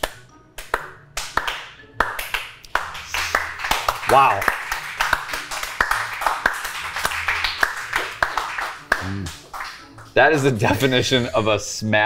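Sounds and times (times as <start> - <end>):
people clapping: 0.0 - 11.0.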